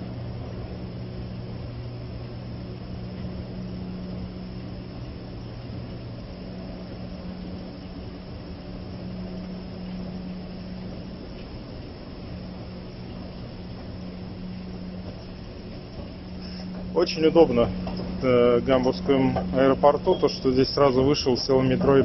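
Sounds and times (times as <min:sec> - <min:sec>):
low mechanical hum: 0:00.0 - 0:22.0
rush of ventilation air: 0:00.0 - 0:22.0.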